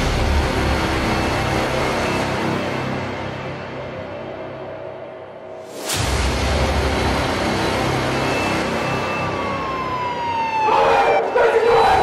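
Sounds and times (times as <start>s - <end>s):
siren-like tone gliding down: 8.2s - 12.0s.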